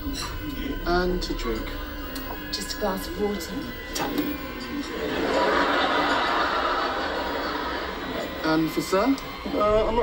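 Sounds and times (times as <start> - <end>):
studio audience laughing: 4.9 - 8.4.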